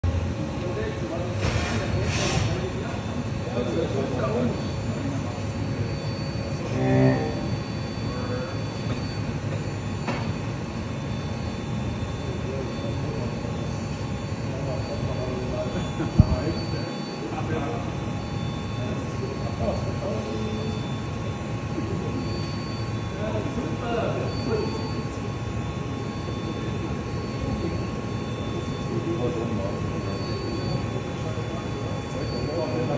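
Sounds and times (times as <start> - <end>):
machine drives humming: 0.0 - 32.9
high whining spindle tones: 5.8 - 9.9.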